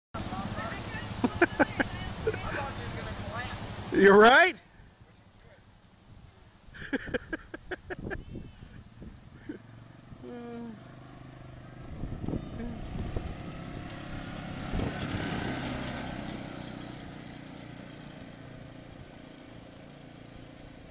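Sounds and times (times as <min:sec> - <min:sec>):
quad engine driving past: 0:00.2 - 0:04.2, 0:08.6 - 0:20.9.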